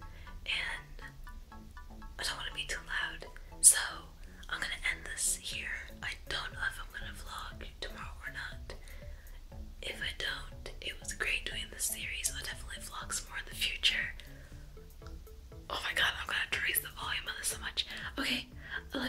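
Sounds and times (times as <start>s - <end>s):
woman whispering: 0.5s - 1.1s, 2.2s - 8.8s, 9.8s - 14.1s, 15.7s - 19.0s.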